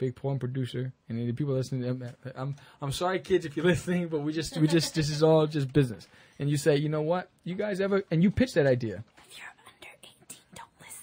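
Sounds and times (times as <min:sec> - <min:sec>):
people whispering: 0:09.2 - 0:11.0.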